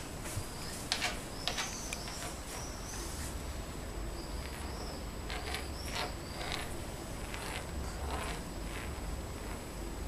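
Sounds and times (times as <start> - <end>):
wax crayon scraping on a wall: 0.5 - 3.4, 4.3 - 10.0.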